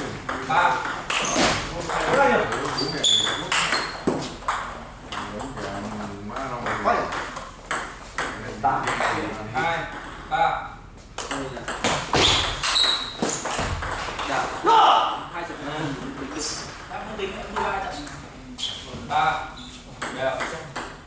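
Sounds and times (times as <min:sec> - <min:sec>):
people talking: 0:00.0 - 0:03.9, 0:04.8 - 0:07.3, 0:08.3 - 0:11.9, 0:14.2 - 0:20.8
table tennis ball clicking and bouncing: 0:00.2 - 0:09.3, 0:11.2 - 0:14.7, 0:20.0 - 0:21.0.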